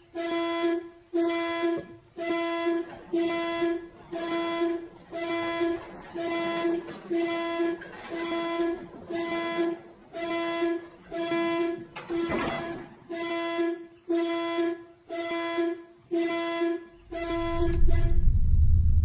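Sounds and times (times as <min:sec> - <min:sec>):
car horn blasts: 0:00.0 - 0:18.4
deep rumble: 0:17.1 - 0:19.0.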